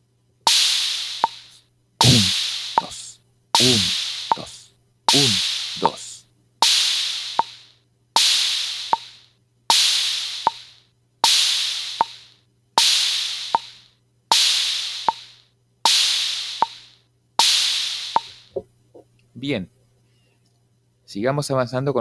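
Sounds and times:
open hi-hat hissing: 0.0 - 18.7
faint steady hum: 0.0 - 22.0
dry bongo taps: 1.2 - 1.4, 2.0 - 3.0, 8.9 - 9.1, 12.0 - 12.2.

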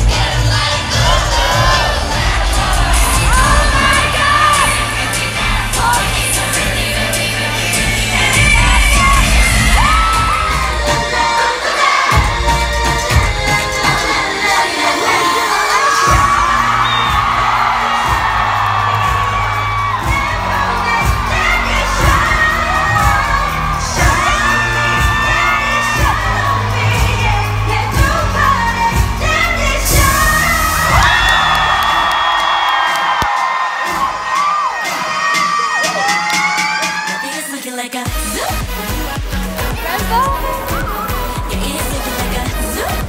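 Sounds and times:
women singing: 0.0 - 31.7, 36.9 - 43.0
audience screaming and cheering: 0.0 - 43.0.

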